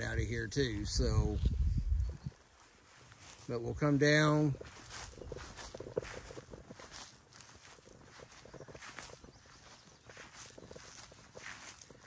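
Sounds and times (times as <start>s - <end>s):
footsteps through grass: 0.0s - 12.0s.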